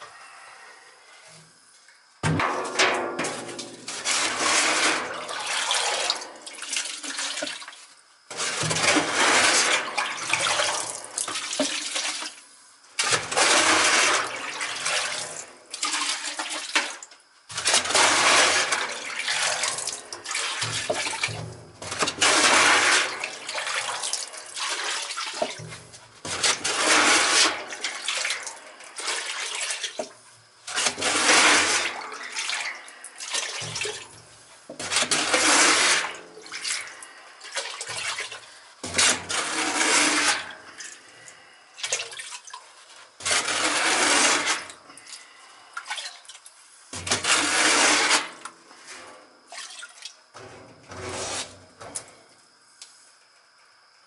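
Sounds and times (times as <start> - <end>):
oil pouring into bucket: 17.6 - 30.0, 30.7 - 34.0.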